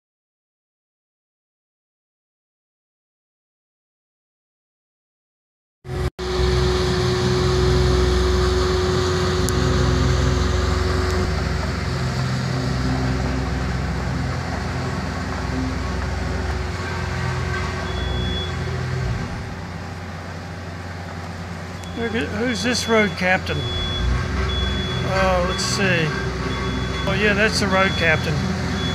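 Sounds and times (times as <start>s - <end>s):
road roller diesel engine: 5.9s - 28.9s.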